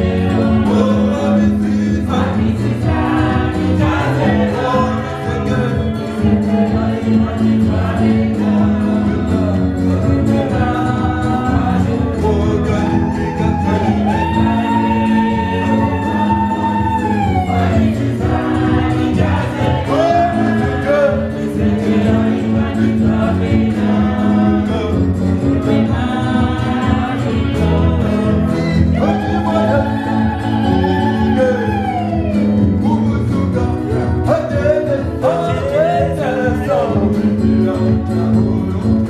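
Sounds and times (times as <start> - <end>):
group singing: 0.0 - 39.0
instrumental backing: 0.0 - 39.0.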